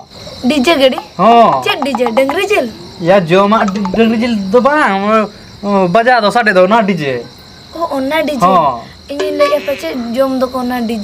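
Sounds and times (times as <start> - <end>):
crickets chirring: 0.0 - 11.0
voices talking loudly: 0.0 - 11.0.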